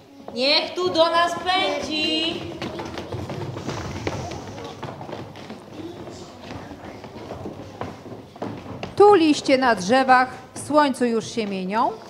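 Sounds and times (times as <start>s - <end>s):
children running on stage floor: 0.0s - 12.0s
murmur of voices: 0.0s - 12.0s.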